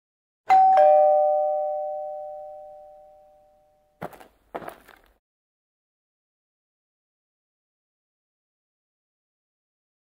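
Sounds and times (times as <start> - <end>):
two-tone doorbell chime: 0.5 - 4.0.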